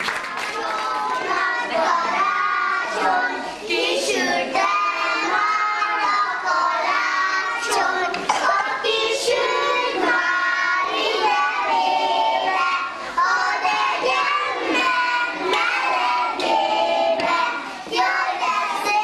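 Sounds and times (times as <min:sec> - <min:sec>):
children singing in unison: 0:00.0 - 0:19.0.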